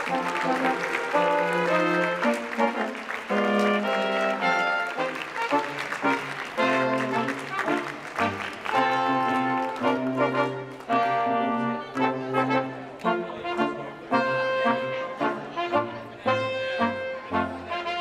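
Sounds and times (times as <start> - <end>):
brass quintet playing slow piece: 0.0 - 18.0.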